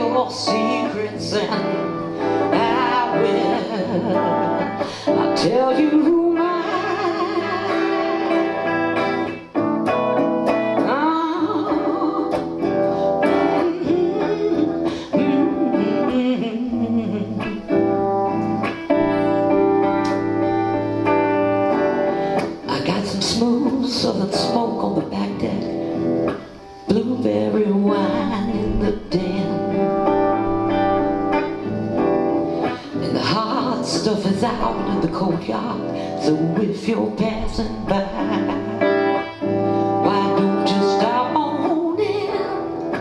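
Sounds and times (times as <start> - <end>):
woman singing: 0.0 - 9.5, 10.5 - 43.0
electric guitar playing: 0.0 - 43.0.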